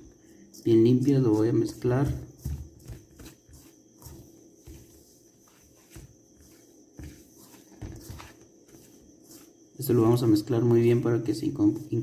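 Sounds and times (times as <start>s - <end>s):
soft rustling of flour: 0.0s - 12.0s.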